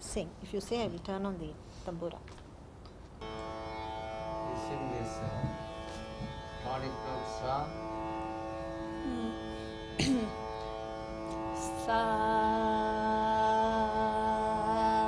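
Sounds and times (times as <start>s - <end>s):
sustained drone tones: 3.2s - 15.0s.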